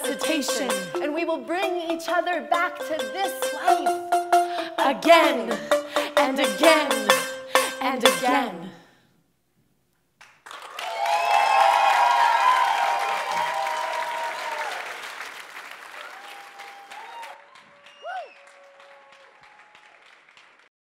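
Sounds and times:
audience applauding: 10.2s - 20.7s
crowd cheering: 10.5s - 20.7s
person whooping: 10.8s - 14.9s, 16.0s - 17.4s, 18.0s - 19.7s.

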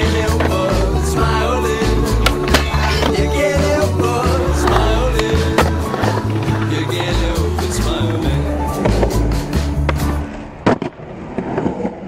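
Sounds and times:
skateboard wheels rolling on concrete: 0.0s - 12.0s
skateboard clack: 1.8s - 12.0s.

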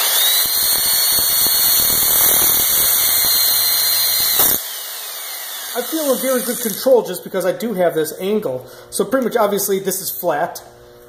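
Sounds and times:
polisher whine: 0.0s - 6.8s
disc grinding steel: 0.0s - 6.9s.

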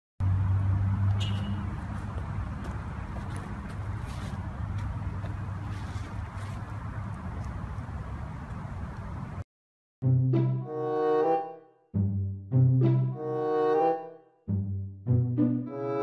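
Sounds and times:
low rumble of road traffic: 0.2s - 9.4s.

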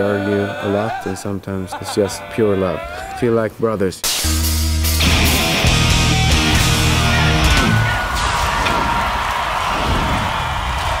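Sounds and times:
hard rock band with heavy bass: 4.2s - 8.0s.

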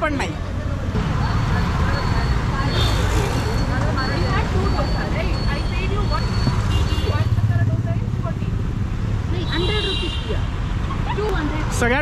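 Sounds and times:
traffic engines rumbling: 0.0s - 12.0s
voices talking: 0.0s - 12.0s.

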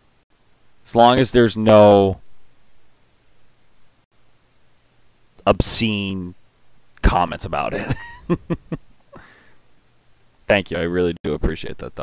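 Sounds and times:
faint microphone hiss: 0.0s - 12.0s
low steady hum: 0.0s - 12.0s.

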